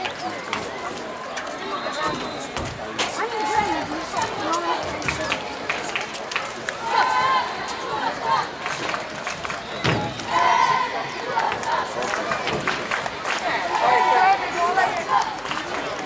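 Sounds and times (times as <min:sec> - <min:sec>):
children shouting and chattering: 0:00.0 - 0:16.0.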